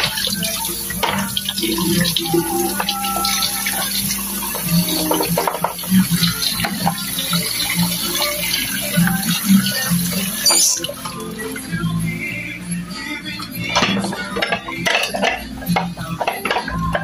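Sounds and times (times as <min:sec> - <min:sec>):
tap water running into sink: 0:00.0 - 0:11.4
dishes clinking and knocking: 0:00.9 - 0:01.5, 0:02.8 - 0:06.0, 0:13.8 - 0:17.0.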